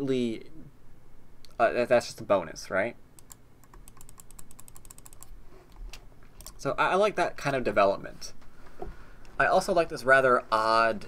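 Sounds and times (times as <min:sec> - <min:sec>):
computer keyboard keypresses: 0:03.2 - 0:05.3.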